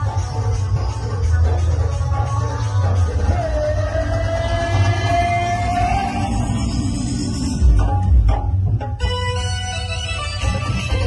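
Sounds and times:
loud dj music with bass beat: 0.0 - 8.6
long held rising note: 3.3 - 8.2.

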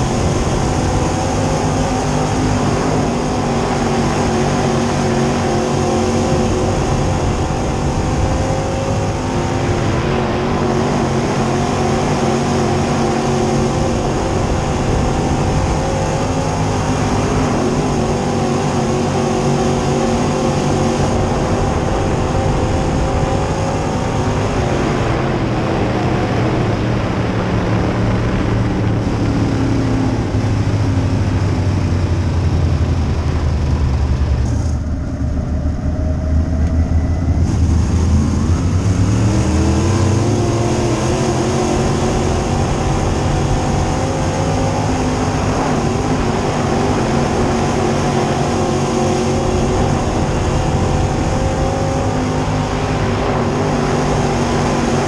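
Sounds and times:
race car engine revving: 0.0 - 55.0.

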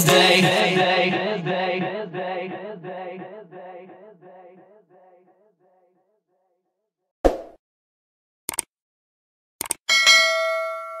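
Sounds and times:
quick clicks: 8.5 - 8.7, 9.6 - 9.8
notification bell ding: 9.9 - 11.0.

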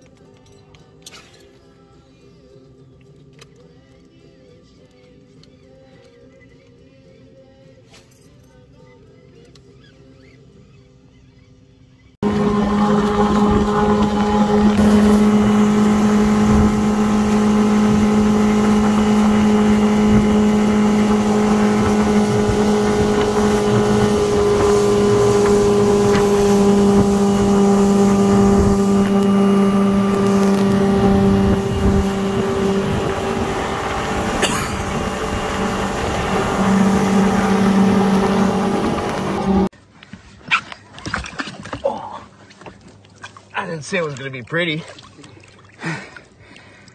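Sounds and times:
motorboat engine running: 9.2 - 39.7
wind and water rushing: 12.2 - 39.7.

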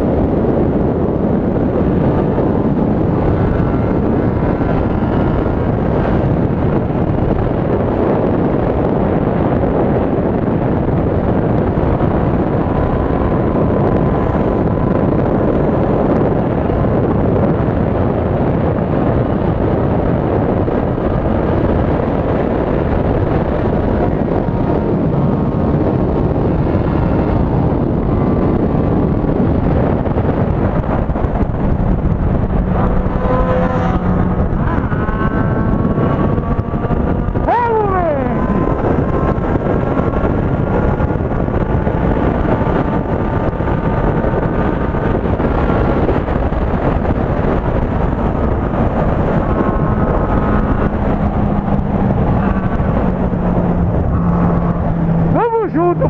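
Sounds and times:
motorcycle engine at high speed: 0.0 - 56.0
wind rush over microphone: 0.0 - 56.0.

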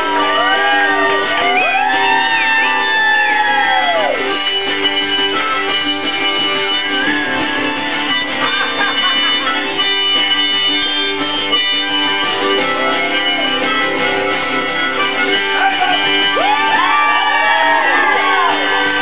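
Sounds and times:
harmonica playing: 0.0 - 19.0
strummed acoustic guitars: 4.0 - 19.0.

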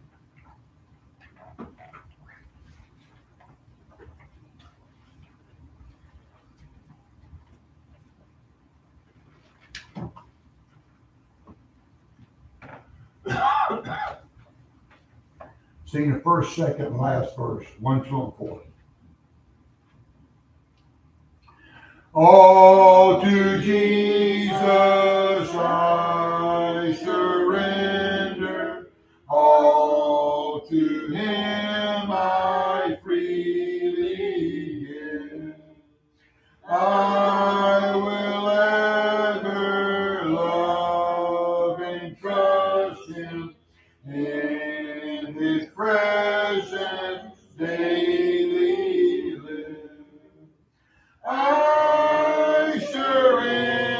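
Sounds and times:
person clearing throat: 13.2 - 14.3
congregation singing a hymn: 22.2 - 35.7, 36.6 - 50.3, 51.2 - 53.9.

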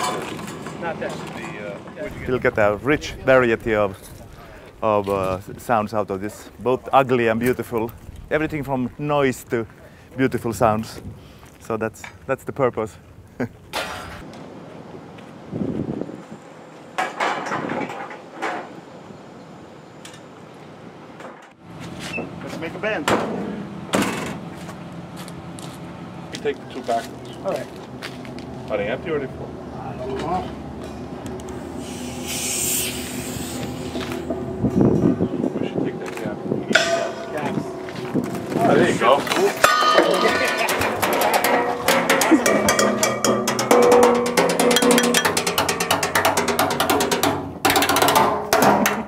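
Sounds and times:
sustained music tones: 33.0 - 47.5
rapid percussion hits: 36.7 - 49.0.

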